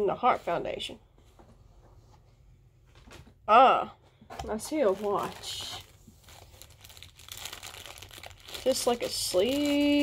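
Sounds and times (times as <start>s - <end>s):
plastic bag crinkling: 4.6s - 10.0s.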